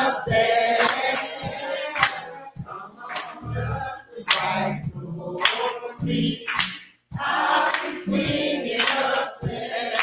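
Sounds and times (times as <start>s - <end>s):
choir and congregation singing: 0.0s - 10.0s
sharp hand claps: 0.8s - 1.4s, 2.0s - 2.3s, 3.1s - 3.4s, 4.2s - 4.6s, 5.4s - 5.8s, 6.4s - 7.0s, 7.6s - 8.0s, 8.8s - 9.2s.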